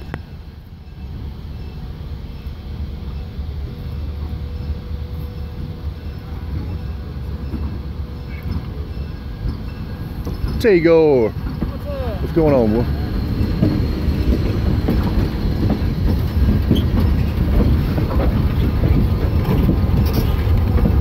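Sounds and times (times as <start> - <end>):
diesel locomotives rumbling: 0.0 - 21.0.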